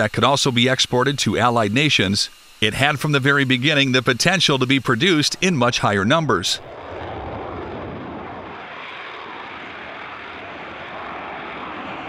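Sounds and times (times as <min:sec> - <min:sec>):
jet engine rushing: 0:00.0 - 0:12.0.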